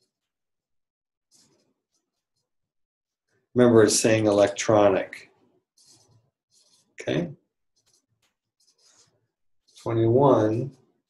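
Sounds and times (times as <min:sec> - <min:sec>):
man speaking: 0:03.6 - 0:05.3, 0:07.0 - 0:07.4, 0:09.8 - 0:10.8.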